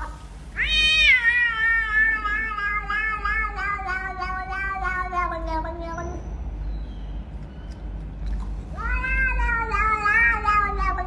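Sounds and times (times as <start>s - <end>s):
cat meowing: 0.6s - 6.3s, 8.7s - 11.0s.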